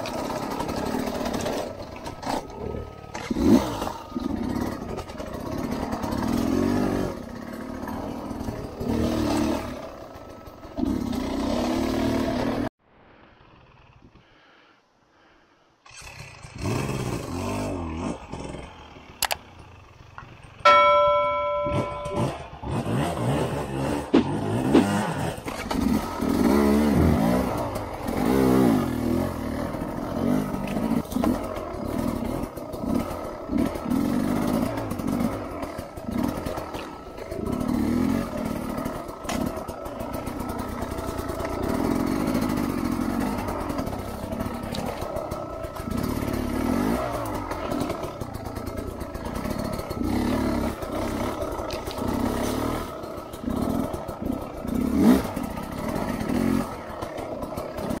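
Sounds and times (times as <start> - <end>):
dirt bike engine revving: 0.0 - 12.7, 15.9 - 19.9, 20.6 - 58.0.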